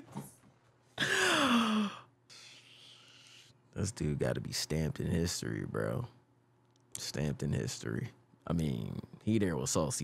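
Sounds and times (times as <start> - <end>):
man sighing: 1.0 - 3.3.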